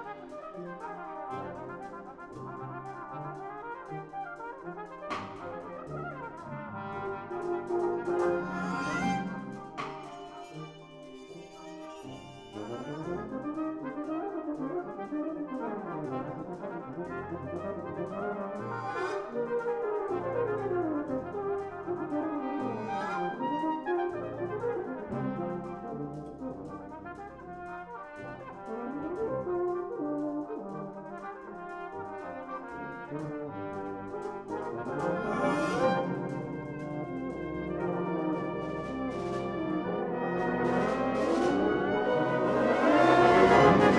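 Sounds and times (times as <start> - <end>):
brass band playing: 0.0 - 43.9.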